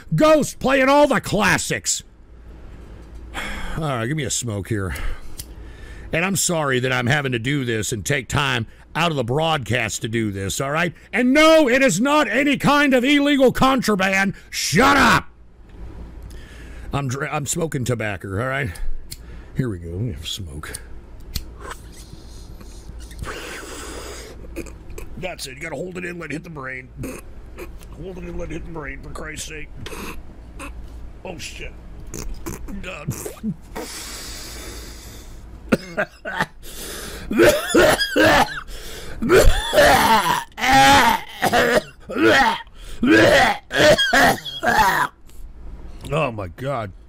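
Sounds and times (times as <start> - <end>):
man coughing harshly: 29.8 - 30.8, 35.7 - 36.6, 37.3 - 45.1.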